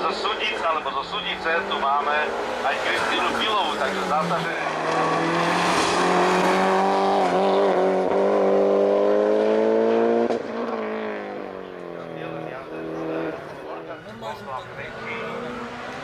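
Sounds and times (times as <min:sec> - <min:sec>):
car engine revving hard: 0:01.3 - 0:13.9, 0:14.8 - 0:16.0.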